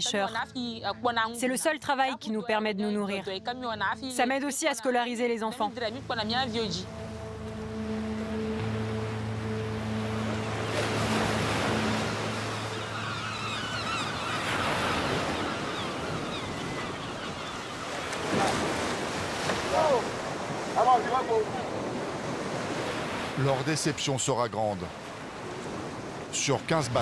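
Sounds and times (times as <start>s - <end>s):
wavering high cries: 6.5s - 17.9s
surf breaking on beach: 17.9s - 23.9s.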